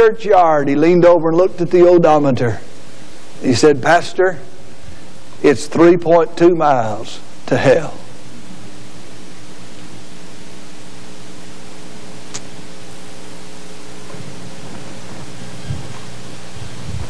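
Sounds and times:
low electrical hum: 0.0s - 17.0s
steady hiss: 0.0s - 17.0s.

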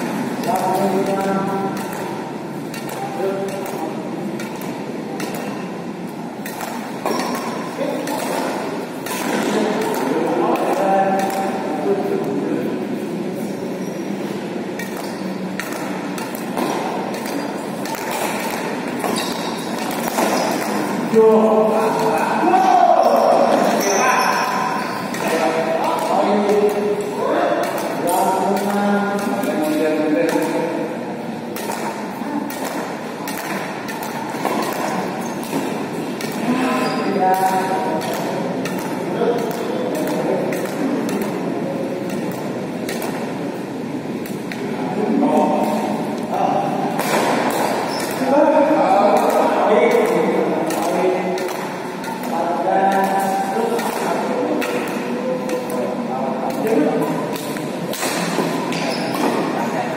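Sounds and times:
racket hitting shuttlecock: 0.0s - 12.9s, 14.2s - 59.5s.

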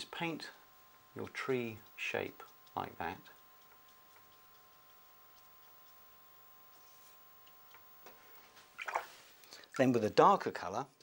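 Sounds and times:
person speaking: 0.0s - 3.5s, 9.5s - 11.0s
faint steady hum: 0.0s - 11.0s.

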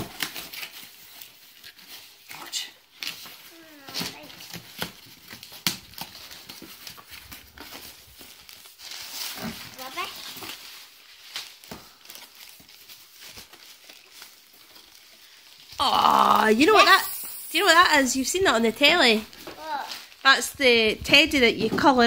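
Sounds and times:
packing paper rustling and crinkling: 0.0s - 22.0s.

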